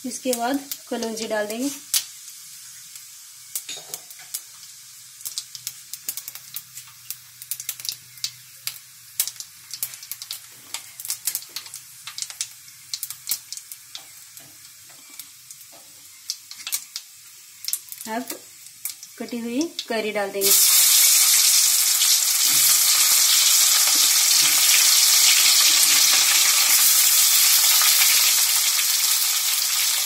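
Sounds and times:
seeds sizzling in hot oil: 0.0 - 30.0
oil popping and crackling: 0.2 - 30.0.

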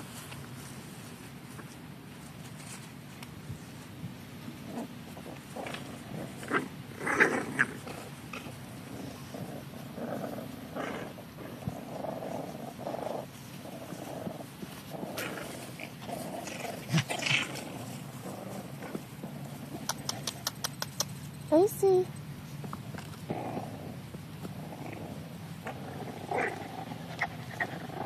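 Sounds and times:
puppies growling: 3.2 - 21.3, 22.5 - 28.0
quick clicks: 19.8 - 21.2.

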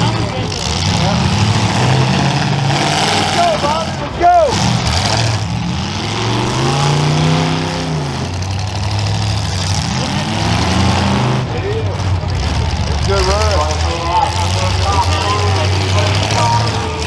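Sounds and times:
car engines droning: 0.0 - 17.0
engine revving: 0.0 - 17.0.

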